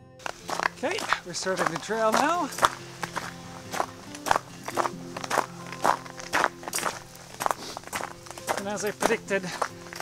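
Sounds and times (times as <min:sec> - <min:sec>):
background music with held notes: 0:00.0 - 0:10.0
footsteps on icy snow: 0:00.2 - 0:10.0.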